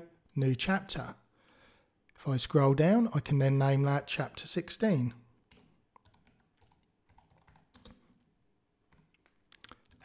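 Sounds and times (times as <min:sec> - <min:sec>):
computer keyboard typing: 0:05.5 - 0:08.3, 0:08.9 - 0:10.0.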